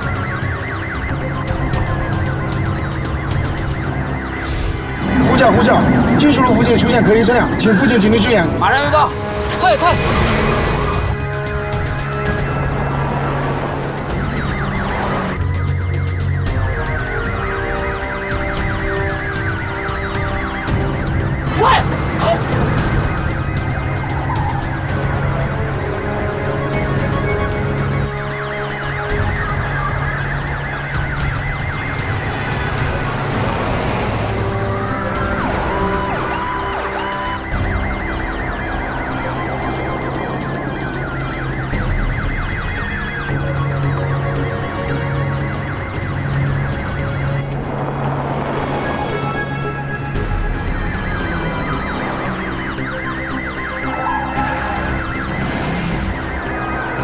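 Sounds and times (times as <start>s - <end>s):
background music: 0.0s - 57.0s
police sirens wailing: 0.0s - 57.0s.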